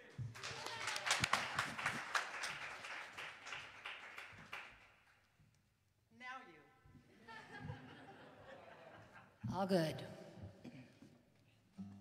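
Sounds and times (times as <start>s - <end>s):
small audience clapping: 0.0s - 5.3s.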